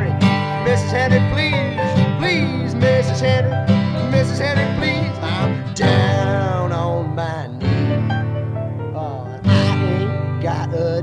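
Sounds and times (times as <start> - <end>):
person singing: 0.0 - 8.2, 8.9 - 11.0
acoustic guitar strumming: 0.0 - 11.0
sliding melodic line: 0.0 - 11.0.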